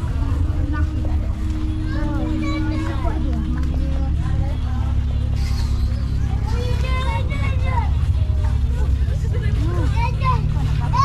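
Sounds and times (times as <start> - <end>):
low rumble: 0.0 - 11.0
people talking: 0.0 - 11.0.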